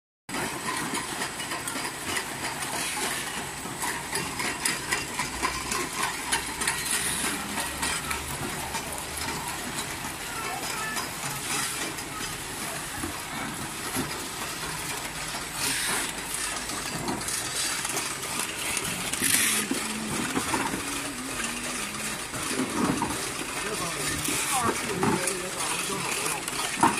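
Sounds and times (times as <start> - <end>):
labelling machine clatter: 0.3 - 26.9.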